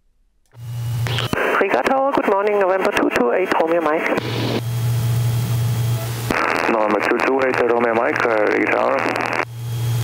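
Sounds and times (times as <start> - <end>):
aircraft engine idling: 0.6 - 10.0.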